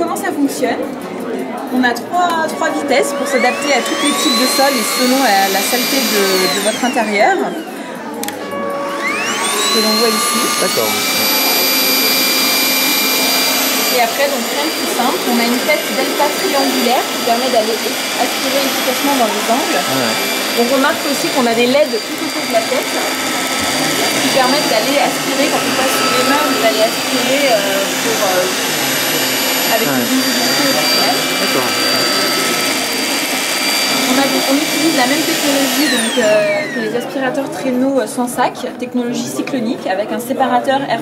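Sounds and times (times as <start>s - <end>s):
vacuum cleaner running: 2.5s - 37.8s.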